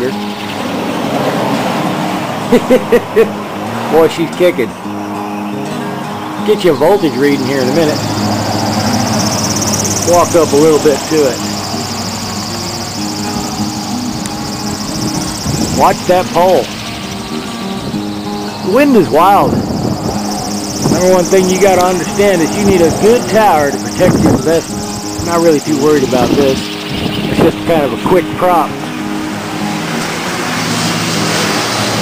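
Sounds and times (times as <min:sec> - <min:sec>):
wind noise: 0:07.1 - 0:32.0
wind turbine propeller whirring: 0:07.4 - 0:28.6.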